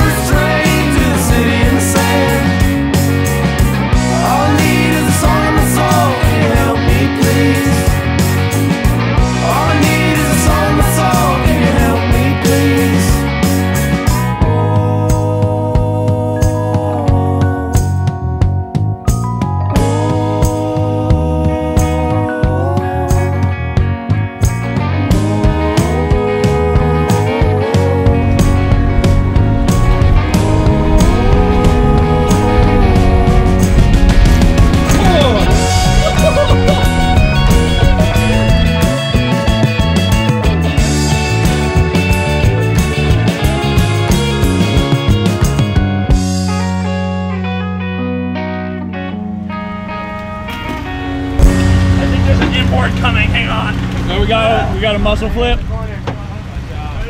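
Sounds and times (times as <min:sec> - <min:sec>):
steady drum beat: 0:00.0 - 0:14.6, 0:28.3 - 0:46.4, 0:51.4 - 0:54.8
bass line: 0:00.0 - 0:57.0
guitar: 0:00.0 - 0:57.0
boat engine humming: 0:25.8 - 0:44.6, 0:48.9 - 0:57.0
voices calling out: 0:34.8 - 0:40.3.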